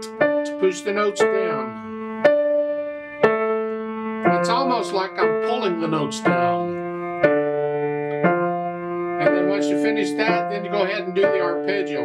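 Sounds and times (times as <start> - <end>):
grand piano notes ringing: 0.0 - 12.0.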